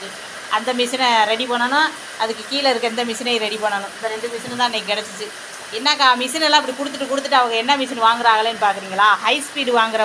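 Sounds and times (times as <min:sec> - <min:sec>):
faint steady hiss: 0:00.0 - 0:10.0
woman talking: 0:00.0 - 0:10.0.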